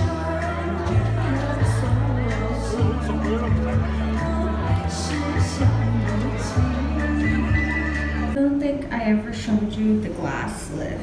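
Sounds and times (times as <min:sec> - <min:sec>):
backing track with heavy bass: 0:00.0 - 0:08.4
woman singing through microphone: 0:00.0 - 0:11.0.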